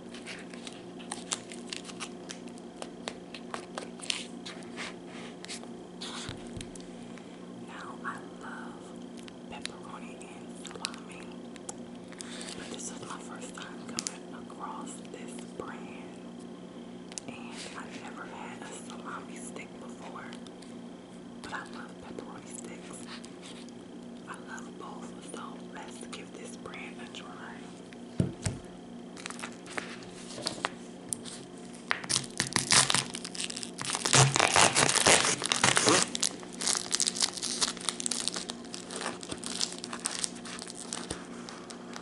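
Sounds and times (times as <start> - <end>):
steady low hum: 0.0 - 42.0
plastic wrapper crinkling and tearing: 0.1 - 4.6, 29.2 - 42.0
woman whispering: 7.7 - 11.4, 12.7 - 16.2, 17.2 - 20.4, 21.4 - 23.1, 24.2 - 27.8.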